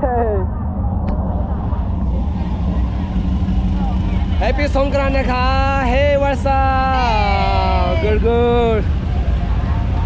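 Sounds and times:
vehicle engine rumbling: 0:00.0 - 0:10.0
faint crowd voices: 0:00.2 - 0:10.0.

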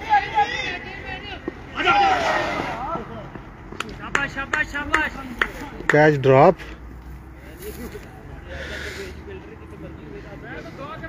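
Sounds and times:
cricket players shouting: 0:00.0 - 0:06.0.

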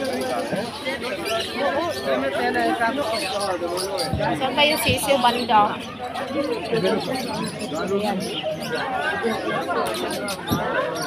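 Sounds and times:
birds chirping: 0:00.0 - 0:11.0
many people talking: 0:00.0 - 0:11.0.

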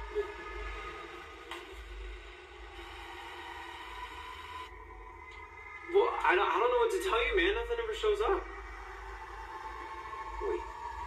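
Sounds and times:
low wavering drone: 0:00.0 - 0:11.0.

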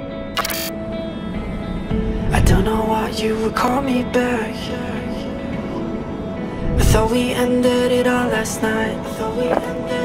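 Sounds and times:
soft music of long held tones: 0:00.0 - 0:10.0
camera shutter sound effect: 0:00.3 - 0:00.7.

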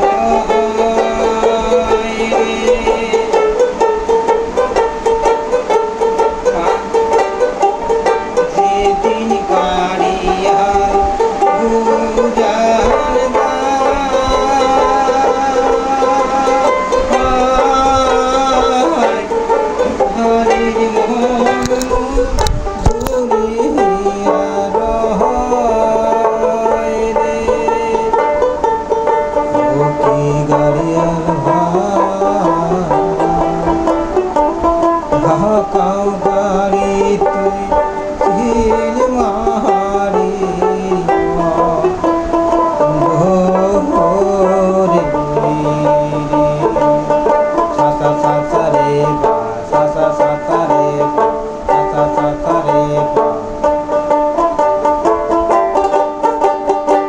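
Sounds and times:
plucked lute folk melody: 0:00.0 - 0:57.0.

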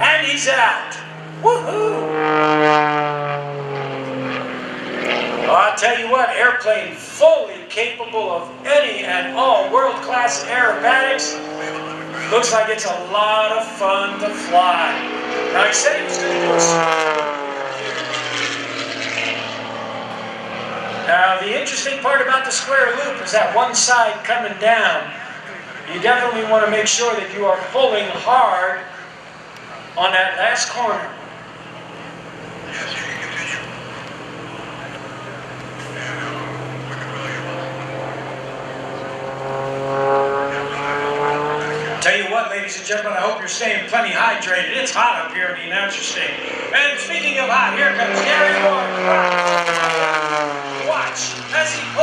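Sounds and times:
propeller plane engine overhead: 0:00.0 - 0:52.0.

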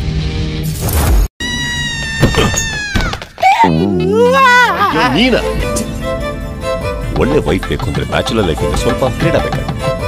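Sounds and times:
music: 0:00.0 - 0:00.9, 0:04.8 - 0:10.0
high-pitched wailing cry: 0:01.4 - 0:04.8.

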